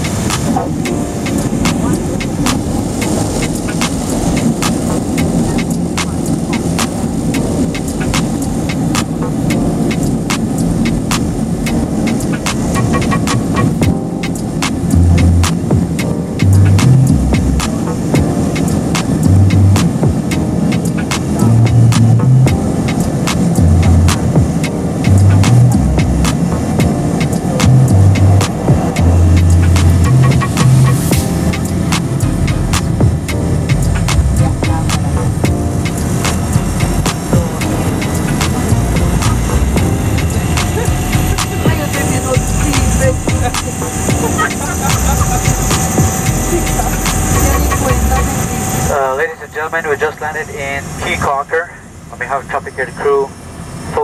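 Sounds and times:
propeller plane engine: 0.0 - 54.0
deep low thumps: 14.9 - 18.3, 19.2 - 20.3, 23.6 - 26.4, 27.6 - 31.4, 32.2 - 35.7, 36.5 - 41.8, 42.4 - 44.4, 45.0 - 48.3.

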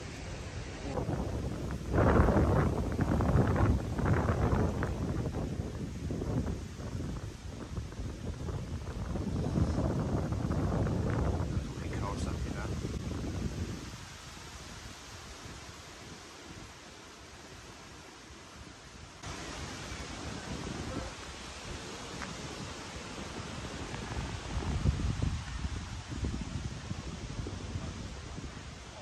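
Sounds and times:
steady hiss: 0.0 - 29.0
wind buffeting microphone: 0.0 - 29.0.

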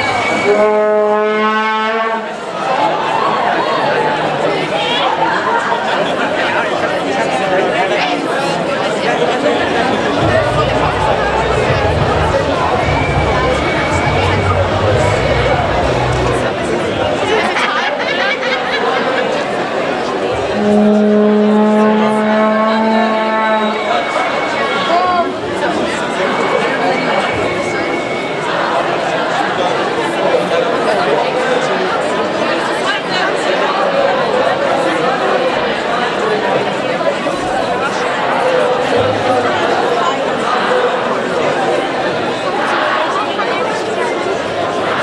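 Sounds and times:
horn note: 0.0 - 2.3, 10.2 - 16.7, 20.3 - 24.7
crowd chatter: 0.0 - 45.0.

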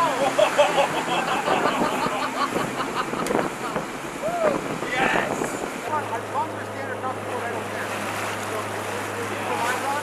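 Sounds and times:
motorboat engine drone: 0.0 - 10.0
water rushing and splashing: 0.0 - 10.0
loud wind: 0.9 - 6.2.

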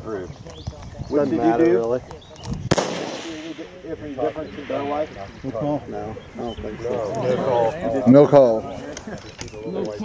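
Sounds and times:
rifle shot: 2.7 - 4.8.

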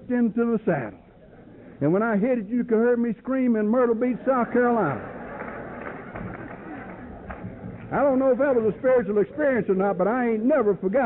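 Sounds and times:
audience laughing: 4.0 - 7.8.

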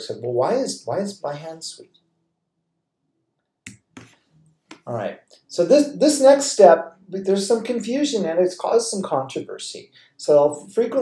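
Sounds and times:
computer mouse clicks: 3.7 - 4.9.

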